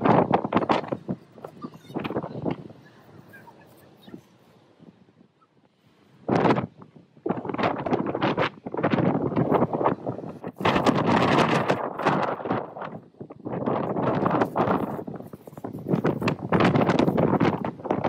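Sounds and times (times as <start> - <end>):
gusty wind buffeting microphone: 0.0 - 18.0.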